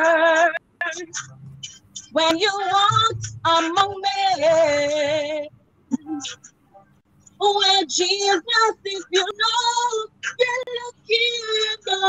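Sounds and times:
woman singing unaccompanied: 0:00.0 - 0:01.3, 0:02.0 - 0:06.4, 0:07.4 - 0:12.0.

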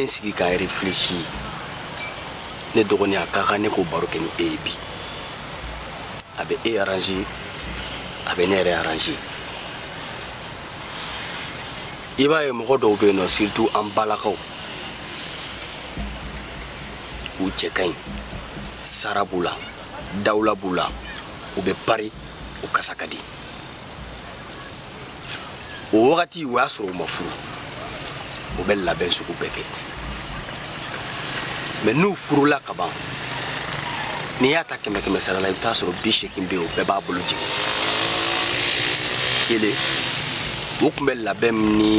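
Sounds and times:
insects trilling: 0:00.0 - 0:41.9.

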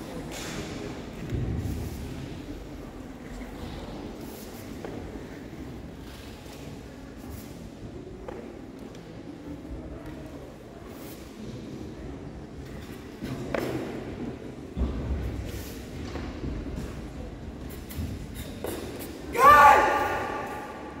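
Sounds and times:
murmur of spectators: 0:00.0 - 0:21.0.

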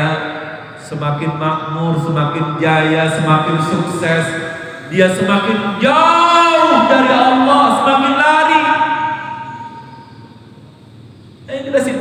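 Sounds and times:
man's amplified voice: 0:00.0 - 0:09.8, 0:11.5 - 0:12.0
low background noise: 0:00.0 - 0:12.0
held ringing tone: 0:04.6 - 0:10.5.

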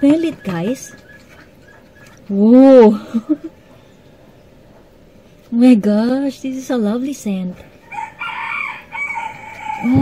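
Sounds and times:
high-pitched animal call: 0:07.9 - 0:10.0.

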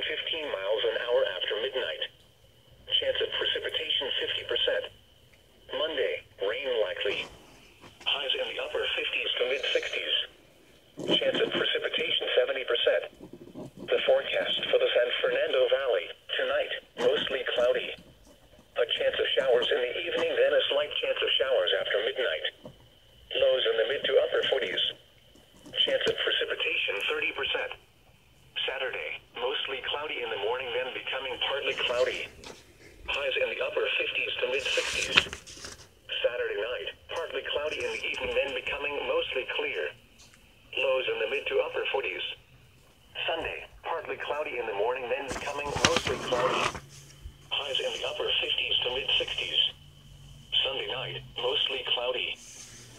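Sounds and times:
voice through small radio speaker: 0:00.0 - 0:02.2, 0:02.8 - 0:05.0, 0:05.7 - 0:07.4, 0:08.0 - 0:10.4, 0:11.0 - 0:18.1, 0:18.8 - 0:22.6, 0:23.3 - 0:25.0, 0:25.6 - 0:27.8, 0:28.6 - 0:32.5, 0:33.1 - 0:35.3, 0:36.1 - 0:40.0, 0:40.7 - 0:42.4, 0:43.1 - 0:46.8, 0:47.5 - 0:49.8, 0:50.5 - 0:52.4.

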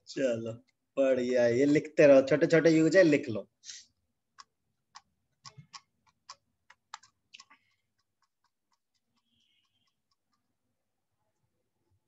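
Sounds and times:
faint irregular clicking: 0:04.2 - 0:11.0.

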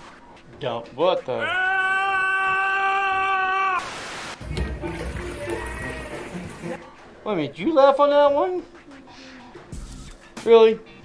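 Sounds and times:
hiss: 0:03.8 - 0:04.4.

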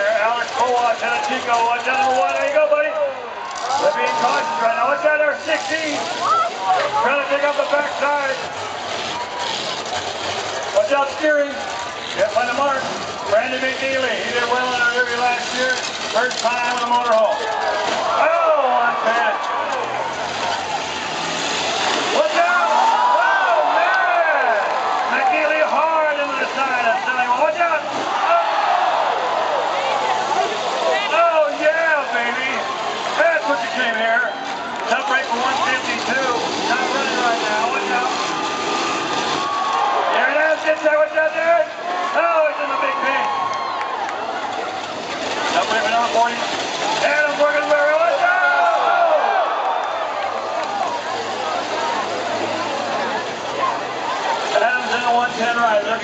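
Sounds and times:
engines running: 0:00.0 - 0:56.0.

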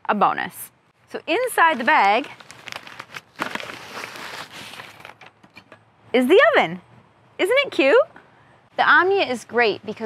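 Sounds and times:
fabric bag rustling: 0:01.4 - 0:05.3.

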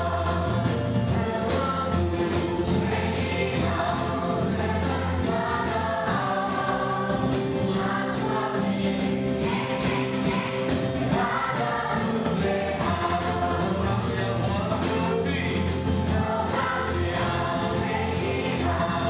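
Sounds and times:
amplified backing music: 0:00.0 - 0:19.0
man and woman singing: 0:00.0 - 0:19.0.

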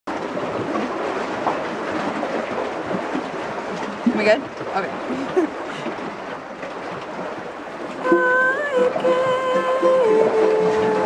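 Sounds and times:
lake waves lapping on shore: 0:00.1 - 0:11.0.

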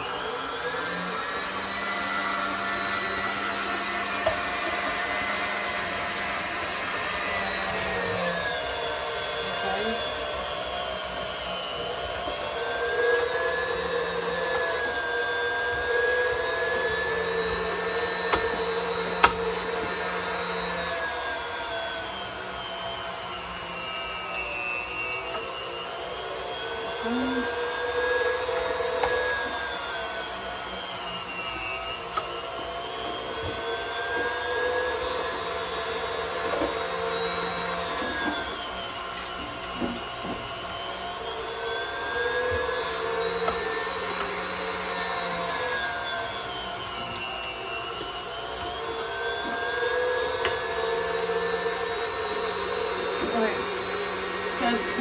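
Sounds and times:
stand mixer grinding meat: 0:00.0 - 0:55.0.

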